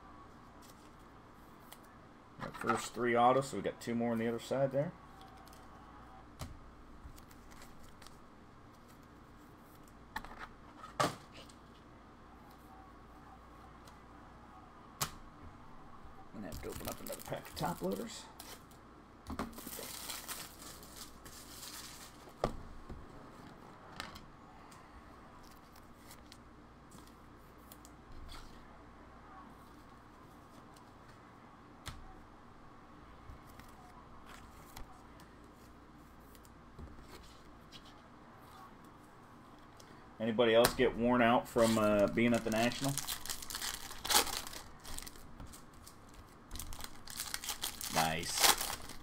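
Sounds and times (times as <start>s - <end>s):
foil wrappers tearing and crinkling: 16.4s - 18.7s, 19.5s - 22.3s, 41.6s - 49.0s.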